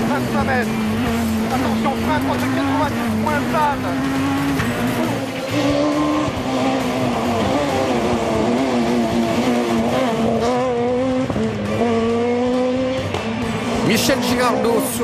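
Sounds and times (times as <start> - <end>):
rally car engine revving high: 0.0 - 15.0.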